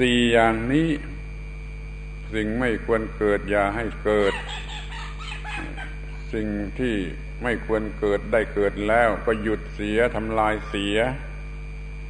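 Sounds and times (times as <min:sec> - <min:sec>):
man speaking: 0:00.0 - 0:01.1, 0:02.3 - 0:04.5, 0:06.2 - 0:11.3
steady low hum: 0:00.0 - 0:12.0
faint bird calls: 0:04.2 - 0:06.4.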